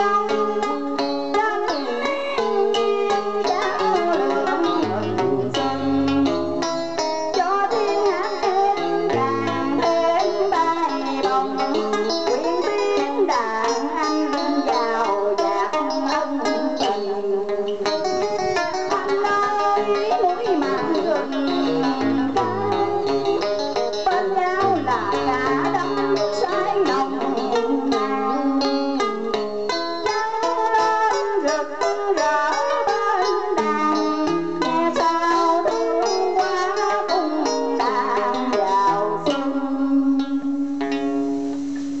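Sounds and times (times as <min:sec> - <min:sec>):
woman singing into microphone: 0:00.0 - 0:41.9
plucked string instruments: 0:00.0 - 0:42.0.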